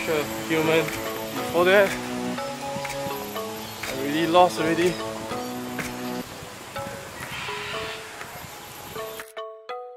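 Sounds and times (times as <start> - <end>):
steady outdoor noise: 0.0 - 9.4.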